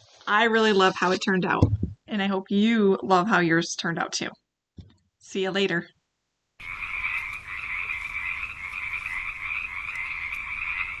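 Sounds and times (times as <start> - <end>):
frogs trilling: 6.6 - 11.0.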